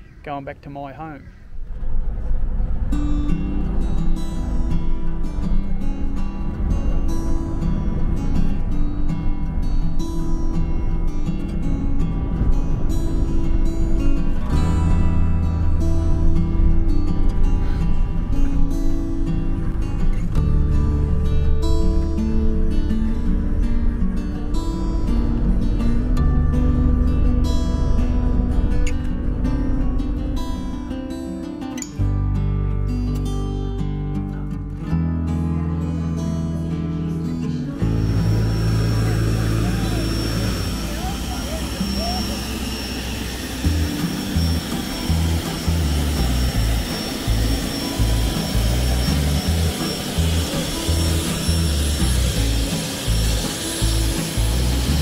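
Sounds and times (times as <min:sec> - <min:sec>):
jet aircraft whine: 0:01.4 - 0:31.3, 0:37.6 - 0:55.0
guitar music: 0:02.5 - 0:55.0.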